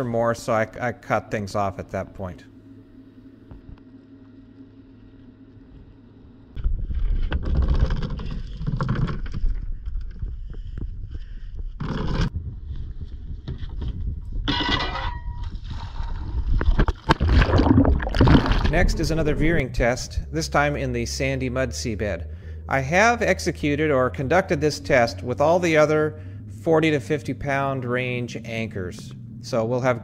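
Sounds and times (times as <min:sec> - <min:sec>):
faint steady hum: 0:00.0 - 0:30.0
wind rumbling on microphone: 0:06.6 - 0:20.9, 0:23.0 - 0:30.0
water: 0:15.6 - 0:19.8.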